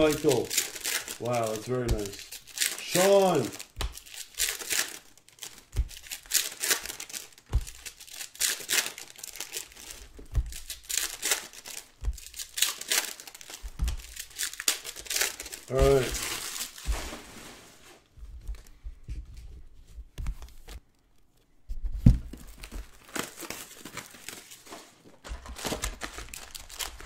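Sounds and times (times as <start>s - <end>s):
foil wrappers crinkling and tearing: 0.0s - 18.1s, 22.4s - 27.0s.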